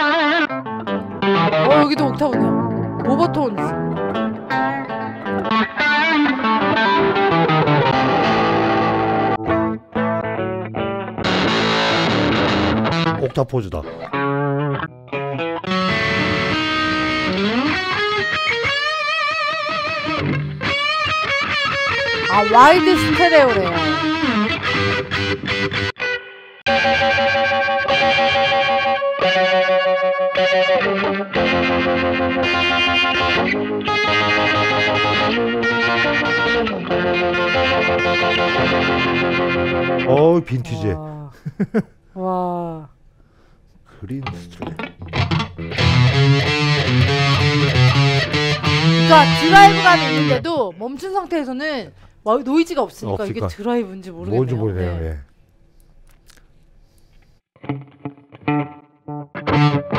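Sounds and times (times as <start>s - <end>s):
overdriven electric guitar chords: 0.0s - 13.2s, 13.8s - 40.1s, 44.5s - 50.6s, 57.6s - 59.9s.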